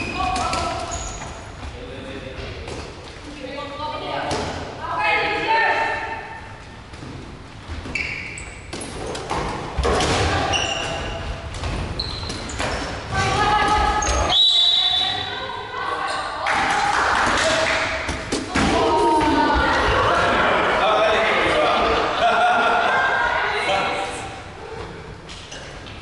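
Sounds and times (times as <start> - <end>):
shoe squeaks: 0.0 - 1.5, 7.8 - 9.2, 10.4 - 11.3, 11.9 - 13.1, 13.8 - 15.3
balls bouncing on wooden floor: 6.9 - 14.3.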